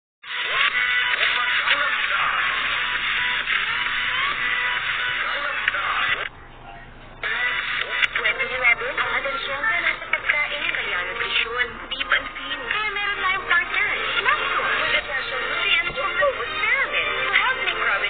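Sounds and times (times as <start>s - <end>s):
tinny commercial music with voices: 0.3s - 6.3s, 7.2s - 18.0s.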